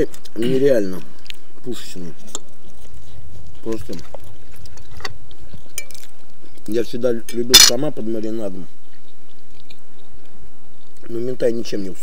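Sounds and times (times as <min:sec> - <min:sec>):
fork clinking on ceramic plate: 0:07.6 - 0:07.8.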